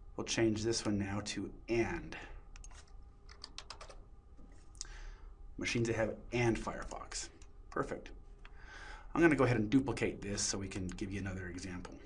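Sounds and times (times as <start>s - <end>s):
faint computer keyboard typing: 2.5s - 4.0s.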